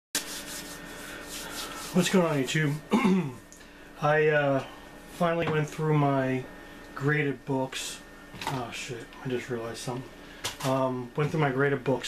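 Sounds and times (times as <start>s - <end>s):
rubbing brushing noise: 0.2s - 2.8s
faint steady hum: 0.2s - 12.0s.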